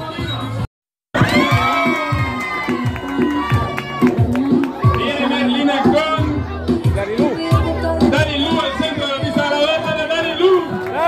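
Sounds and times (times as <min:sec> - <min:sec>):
children shouting and cheering: 0:01.2 - 0:09.4
party music with steady beat: 0:01.2 - 0:11.0.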